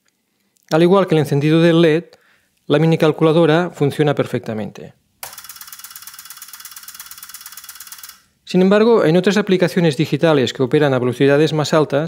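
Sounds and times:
relays clicking rapidly: 0:05.2 - 0:08.2.

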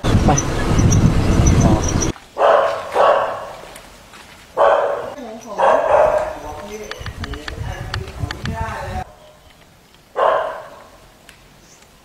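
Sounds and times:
dog barking: 0:02.4 - 0:03.6, 0:04.6 - 0:06.4, 0:10.2 - 0:10.9.

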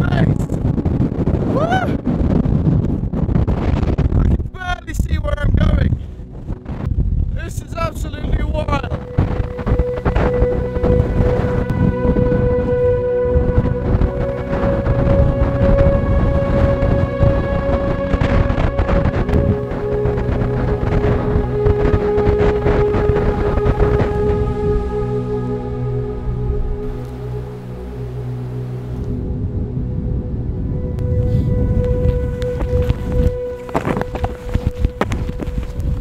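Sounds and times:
gusty wind buffeting microphone: 0:00.0 - 0:36.0
slow background music: 0:00.0 - 0:36.0.

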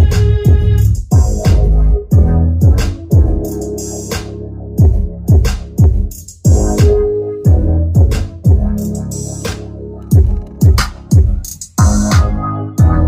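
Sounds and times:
electronic music with deep bass drum: 0:00.0 - 0:13.0.

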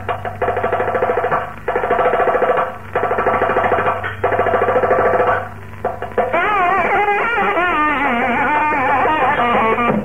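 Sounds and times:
steady low hum: 0:00.0 - 0:10.0
nadaswaram playing pulsed notes: 0:03.2 - 0:10.0.

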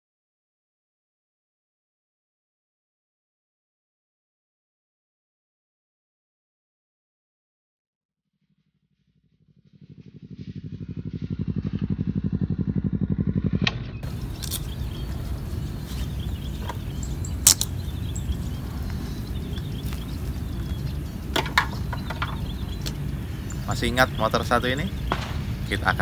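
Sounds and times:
motorcycle approaching and idling: 0:08.6 - 0:26.0
sharp clicks: 0:14.0 - 0:15.2, 0:16.4 - 0:17.9, 0:21.3 - 0:23.6.

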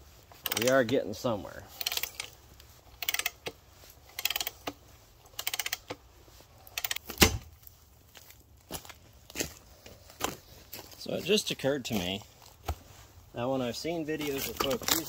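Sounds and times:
ratchet handle clicking: 0:00.4 - 0:00.8, 0:01.8 - 0:02.4, 0:03.0 - 0:06.0, 0:06.7 - 0:07.1.

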